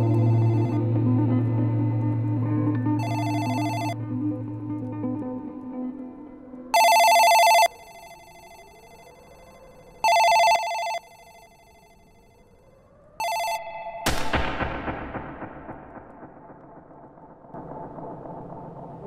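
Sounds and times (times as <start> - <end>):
telephone ringing: 3.0 - 4.0, 6.8 - 12.4, 13.2 - 14.0
loud boom: 14.0 - 19.0.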